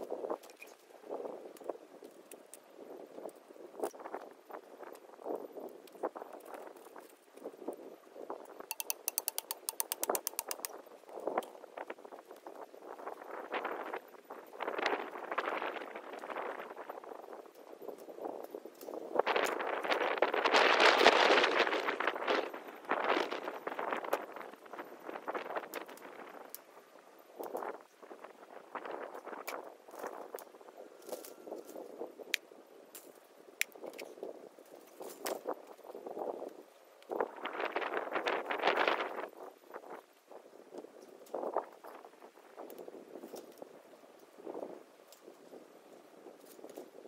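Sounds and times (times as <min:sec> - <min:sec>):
clicks and knocks on wire fence: 0:08.7 - 0:10.8
noisy rustle: 0:10.8 - 0:47.0.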